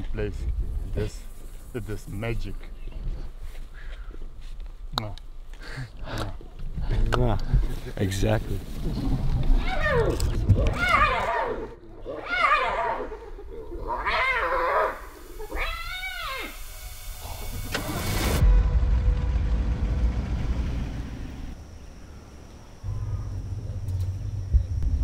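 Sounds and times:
hyena calling: 0:09.5 - 0:17.4
vehicle engine rumble: 0:17.5 - 0:25.0.

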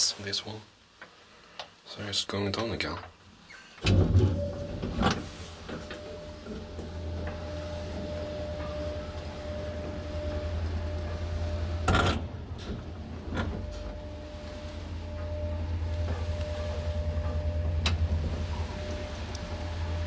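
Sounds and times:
elevator clack: 0:03.8 - 0:20.0
elevator click: 0:03.8 - 0:20.0
elevator hoist machine humming: 0:03.8 - 0:20.0.

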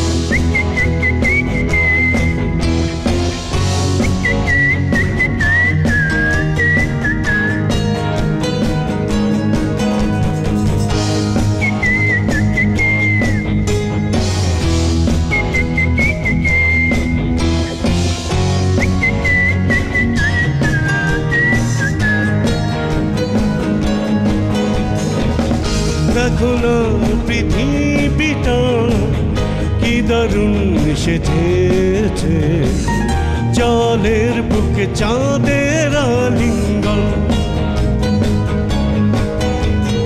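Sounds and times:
whistle-like lead melody: 0:00.0 - 0:02.9, 0:03.5 - 0:08.0, 0:10.3 - 0:14.0, 0:14.7 - 0:22.9
rock band playing: 0:00.0 - 0:40.0
high thin lead melody: 0:32.9 - 0:34.4.

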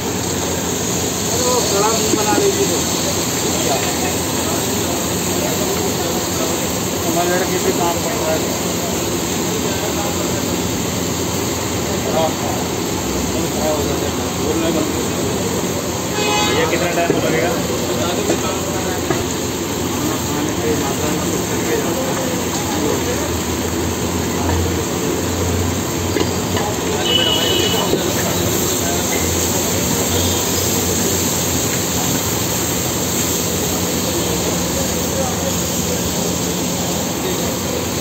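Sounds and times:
food sizzling on a hot griddle: 0:00.0 - 0:38.0.

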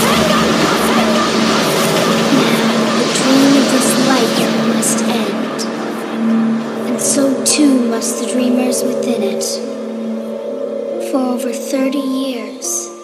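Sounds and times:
dubstep track: 0:00.0 - 0:06.2.

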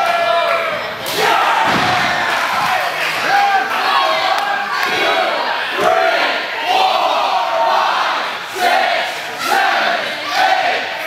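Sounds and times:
crowd yelling and shouting: 0:00.0 - 0:11.0.

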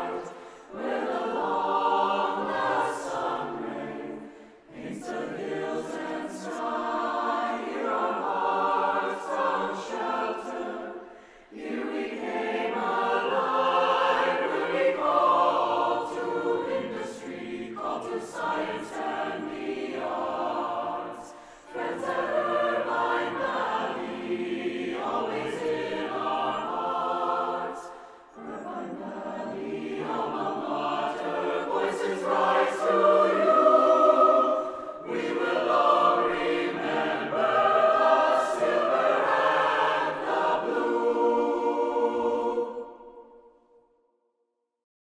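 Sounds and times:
choir breaths: 0:00.0 - 0:43.9
mixed choir singing: 0:00.0 - 0:43.9.

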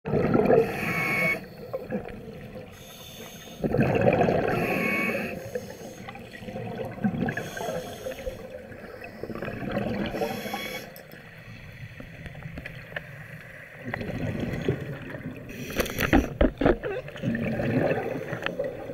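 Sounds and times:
diver's exhaled bubbles gurgling: 0:00.1 - 0:02.7, 0:03.6 - 0:10.6, 0:13.8 - 0:15.6, 0:16.6 - 0:18.9
faint underwater background: 0:00.1 - 0:18.9
thin whistle: 0:00.8 - 0:01.4, 0:04.6 - 0:05.3.

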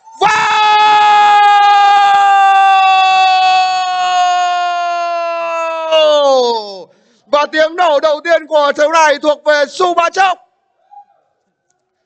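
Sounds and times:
man shouting long goal call: 0:00.1 - 0:06.8.

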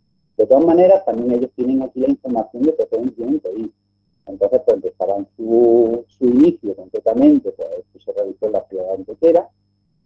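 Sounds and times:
low steady hum: 0:00.0 - 0:10.0
man talking over garbled link: 0:00.4 - 0:03.7, 0:04.3 - 0:09.5.

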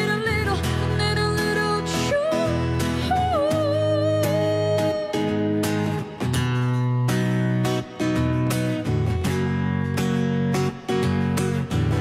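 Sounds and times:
guitar strumming chords: 0:00.0 - 0:12.0.

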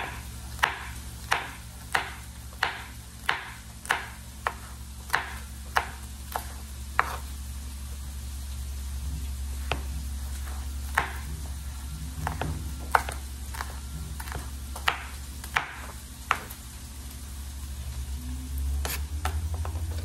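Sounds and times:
knife chopping on wooden board: 0:00.0 - 0:07.3, 0:09.6 - 0:11.4, 0:12.2 - 0:16.6
steady low hum: 0:00.0 - 0:20.0.

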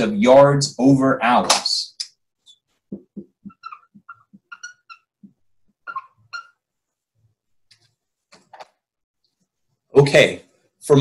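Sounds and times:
marker squeaking on whiteboard: 0:02.0 - 0:07.0
soft marker taps: 0:02.7 - 0:06.5.

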